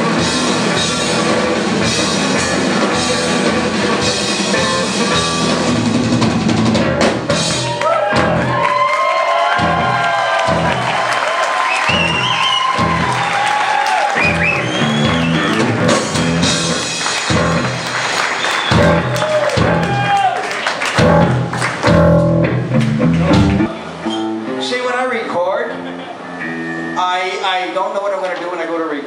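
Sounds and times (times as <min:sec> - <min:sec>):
surf rock band playing: 0:00.0 - 0:08.9, 0:09.5 - 0:24.8, 0:25.7 - 0:27.0
audience cheering: 0:07.4 - 0:23.7
deep bass notes: 0:09.6 - 0:10.9, 0:14.2 - 0:17.9, 0:18.7 - 0:20.0, 0:21.0 - 0:23.7.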